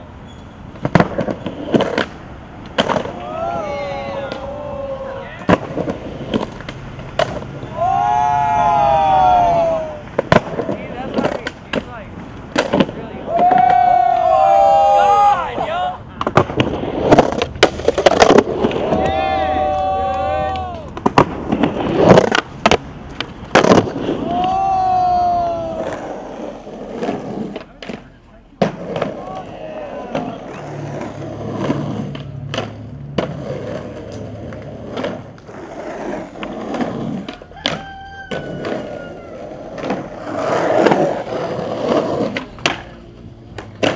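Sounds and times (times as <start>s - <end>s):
skateboard trucks grinding screech: 0.0s - 43.9s
skateboard pops and landings: 0.7s - 4.6s, 5.4s - 8.2s, 10.1s - 11.9s, 16.2s - 26.2s, 26.9s - 39.0s, 39.6s - 43.9s.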